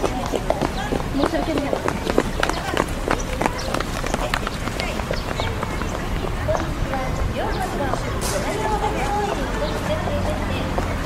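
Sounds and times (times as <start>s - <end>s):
faint voices talking: 0.0s - 11.0s
footsteps on paving: 0.0s - 11.0s
wind rumble on microphone: 0.0s - 11.0s.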